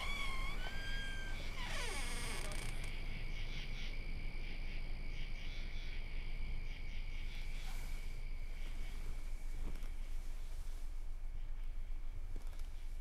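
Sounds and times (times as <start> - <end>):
whistled bird calls: 0.0 - 1.8
steeply falling call: 0.0 - 2.7
faint low rumble: 0.0 - 13.0
insect trill: 0.0 - 13.0.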